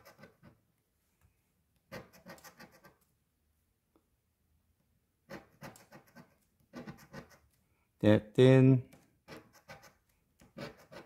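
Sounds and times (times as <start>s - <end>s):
coin scratching lottery ticket: 0.0s - 0.6s, 1.9s - 3.0s, 5.3s - 7.5s, 9.3s - 11.0s.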